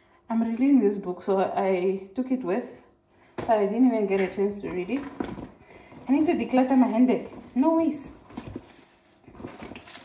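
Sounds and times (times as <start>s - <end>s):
tissues rustling in handbag: 6.0s - 10.0s.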